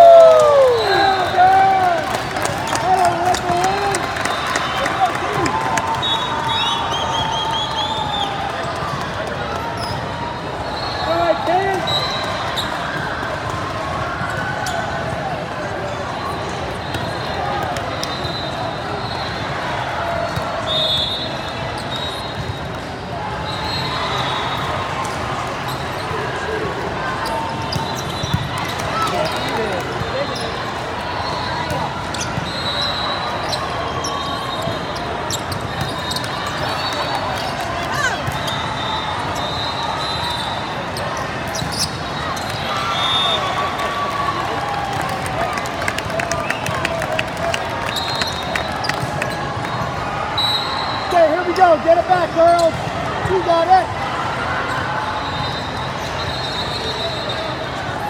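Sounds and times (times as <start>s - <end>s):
many voices: 0.0s - 58.0s.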